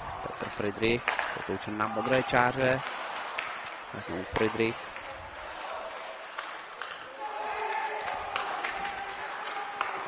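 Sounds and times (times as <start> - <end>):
sticks and puck clicking: 1.0 - 2.2, 2.8 - 5.1, 5.9 - 7.1, 7.7 - 10.0.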